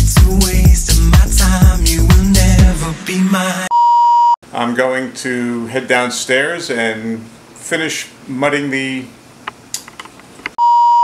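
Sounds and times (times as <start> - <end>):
electronic beep tone: 10.6 - 11.0.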